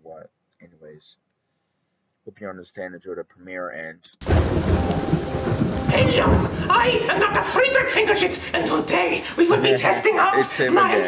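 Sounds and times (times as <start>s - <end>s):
thunder rumble: 4.2s - 8.0s
heavy rain: 4.2s - 8.2s.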